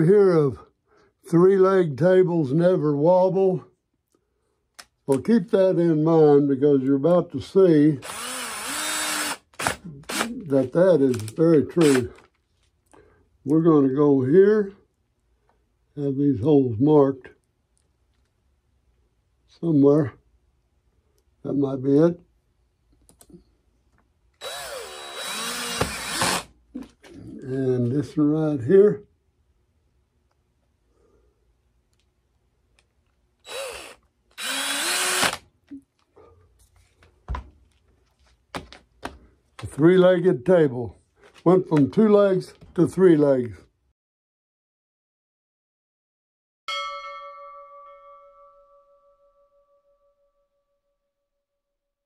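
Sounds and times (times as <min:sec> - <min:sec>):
cordless drill boring into log: 0:08.0 - 0:10.4, 0:11.8 - 0:12.2, 0:24.4 - 0:26.5, 0:33.4 - 0:35.5
bell chime ringing: 0:46.7 - 0:50.5.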